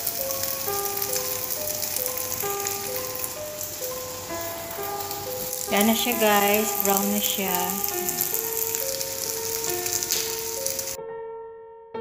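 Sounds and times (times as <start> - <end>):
music of held notes: 0.0 - 11.0
rice sizzling in oil: 0.0 - 11.0.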